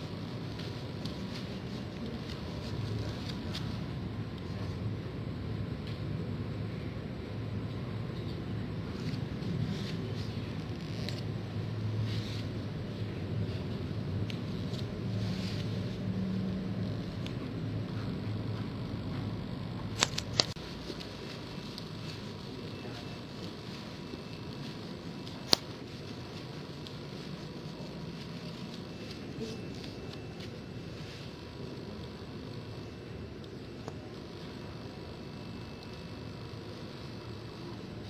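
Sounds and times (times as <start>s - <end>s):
low murmur: 0.0s - 38.0s
steady background hush: 0.0s - 38.0s.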